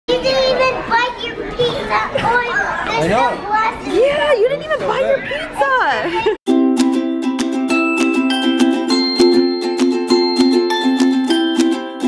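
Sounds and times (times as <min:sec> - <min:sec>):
young children calling and chattering: 0:00.1 - 0:06.4.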